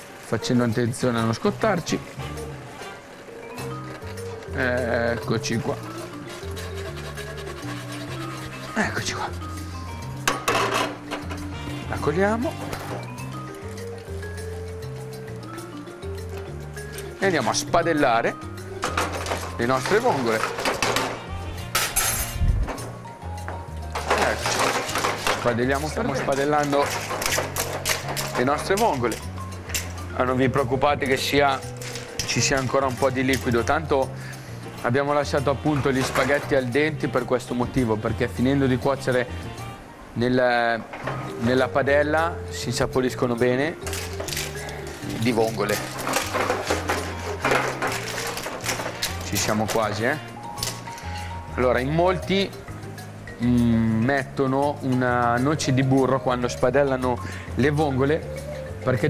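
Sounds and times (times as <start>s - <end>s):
background music with bass line: 3.5s - 39.8s, 41.0s - 59.0s
shells and tongs clinking on pan: 10.1s - 18.2s, 18.8s - 22.9s, 23.8s - 34.4s, 43.1s - 51.4s.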